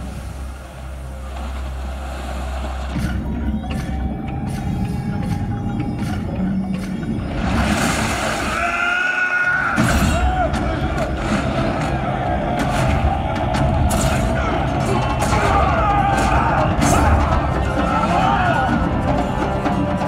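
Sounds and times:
low rumbling effects: 0.0 - 8.9, 9.6 - 20.0
film soundtrack music: 0.0 - 20.0
voices: 8.4 - 20.0.

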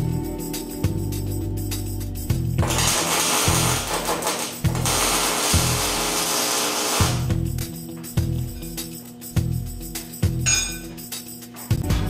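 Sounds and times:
arc welder crackling hiss: 2.4 - 10.4.

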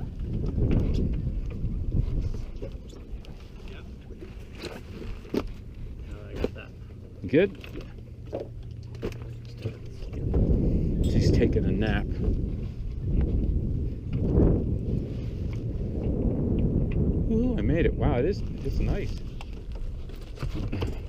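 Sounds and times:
wind rumble: 0.0 - 21.0.

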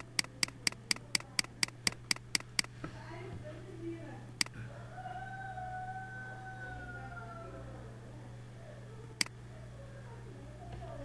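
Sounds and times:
computer mouse click: 0.0 - 2.7
low electrical hum: 0.0 - 11.0.

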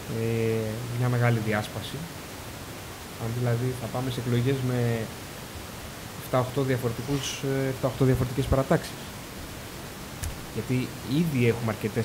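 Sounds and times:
man speaking: 0.0 - 2.1, 3.2 - 5.2, 6.2 - 9.1, 10.5 - 12.0
steady hiss: 0.0 - 12.0.

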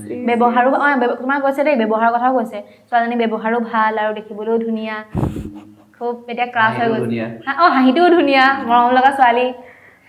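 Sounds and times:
woman talking: 0.0 - 5.1, 6.0 - 9.7.

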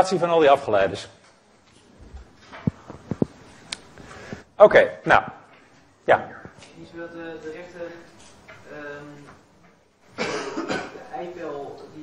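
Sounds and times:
person coughing: 10.2 - 11.0.

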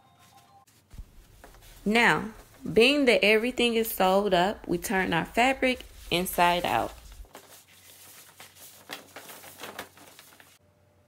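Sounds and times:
plastic sheeting crinkling: 0.2 - 10.6.

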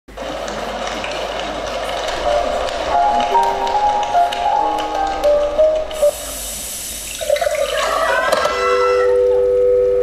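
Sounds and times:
audience cheering and applauding: 1.0 - 6.5.

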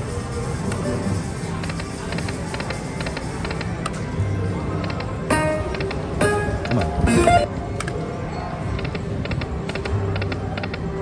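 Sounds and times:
electronic game music: 5.3 - 7.7.

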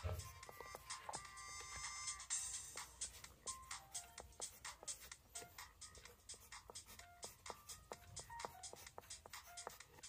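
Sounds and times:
faint electronic music: 0.0 - 10.0
pencil scratching on paper: 0.0 - 10.0.

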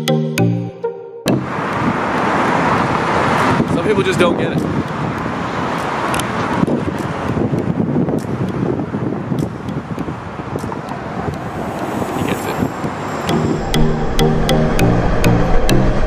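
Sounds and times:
road traffic passing: 1.3 - 16.0
wind buffeting microphone: 1.4 - 16.0.

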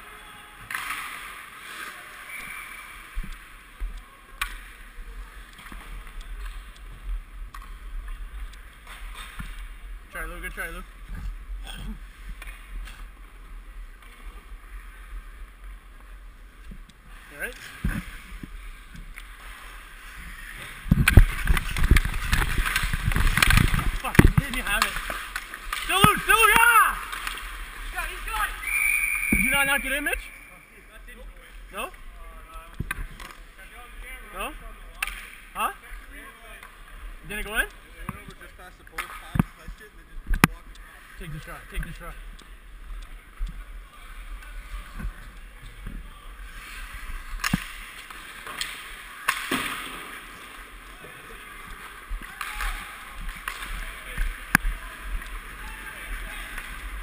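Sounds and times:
sticks and pucks clicking: 5.4 - 6.9, 20.9 - 27.6, 34.9 - 35.4
skates scraping on ice: 17.1 - 28.6.

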